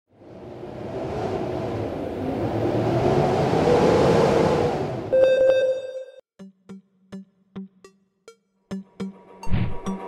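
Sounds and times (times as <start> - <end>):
rushing rumbling noise: 0.1 - 5.1.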